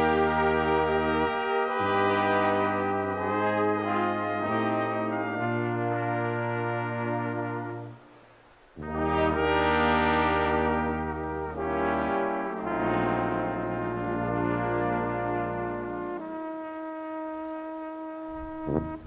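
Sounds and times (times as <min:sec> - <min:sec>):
brass band playing a polka: 0:00.0 - 0:08.0, 0:08.8 - 0:19.0
tuba low notes: 0:00.0 - 0:19.0.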